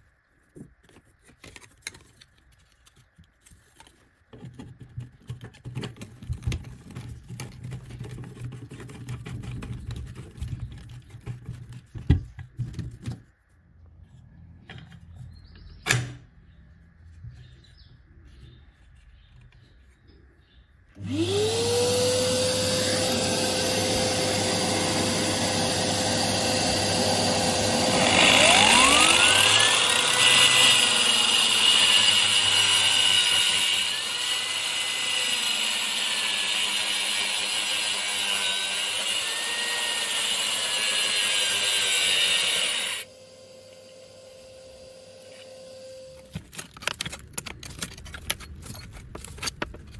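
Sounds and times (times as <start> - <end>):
blades cutting into brick: 21.0 - 43.1
wall chaser motor whining: 21.0 - 46.4.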